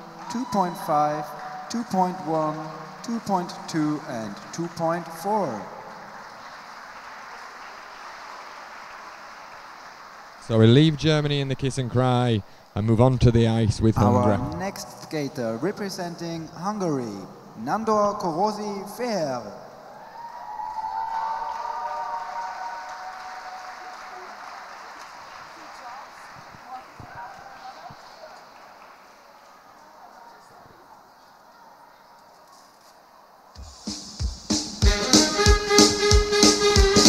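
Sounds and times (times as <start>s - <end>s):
applause: 0.0s - 11.1s, 20.0s - 30.7s
indoor ice arena crowd hum: 0.0s - 13.2s, 13.9s - 33.6s.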